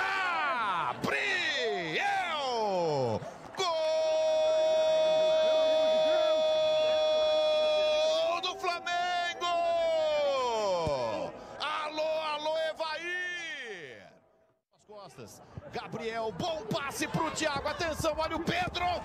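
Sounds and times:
excited shouts: 0.0s - 13.6s
commentator goal cry: 0.0s - 13.8s.

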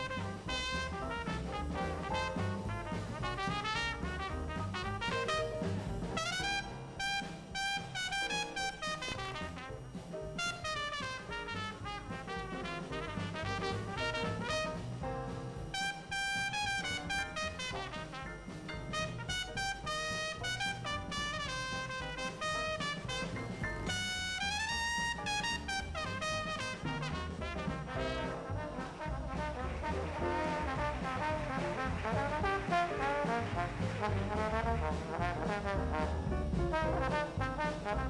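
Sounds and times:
trumpet solo: 0.0s - 15.0s, 15.6s - 38.0s
jazz band playing: 0.0s - 38.0s
trombone: 0.0s - 38.0s.

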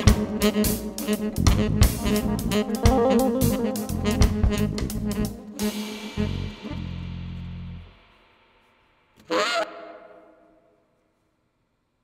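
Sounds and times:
band honking note: 0.0s - 7.9s.

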